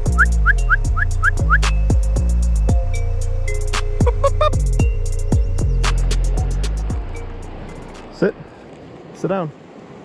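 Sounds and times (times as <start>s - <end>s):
music with heavy low beat: 0.0s - 8.1s
fast river rushing: 5.5s - 10.0s.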